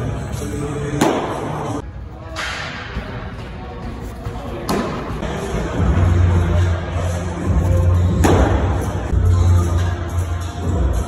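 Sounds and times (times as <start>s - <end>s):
background music with singing: 0.0s - 2.0s, 5.1s - 11.0s
baseball striking glove: 1.0s - 1.6s, 8.2s - 8.7s.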